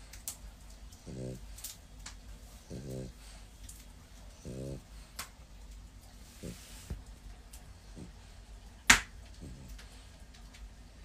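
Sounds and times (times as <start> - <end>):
dog snoring: 1.0 - 1.5, 2.6 - 3.4, 4.4 - 4.9.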